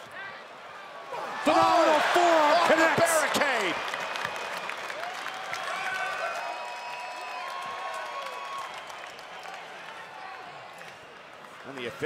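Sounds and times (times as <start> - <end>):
people shouting: 1.1 - 3.6
crowd applauding and cheering: 1.2 - 11.9.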